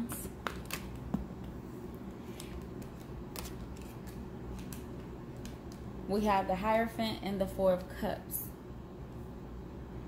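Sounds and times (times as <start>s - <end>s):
low steady hum: 0.0s - 10.0s
cards shuffling: 2.2s - 5.8s.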